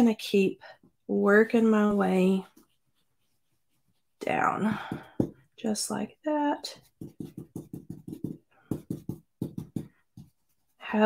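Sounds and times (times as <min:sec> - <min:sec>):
brush swishing on cardstock: 0:02.4 - 0:04.2.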